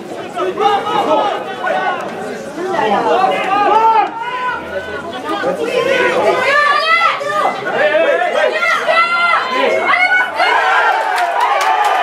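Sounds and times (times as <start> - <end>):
voices shouting over one another: 2.8 - 12.0.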